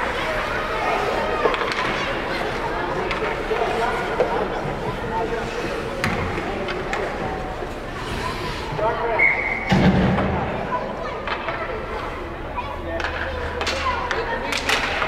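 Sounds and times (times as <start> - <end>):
spectators chatting: 0.0 - 15.0.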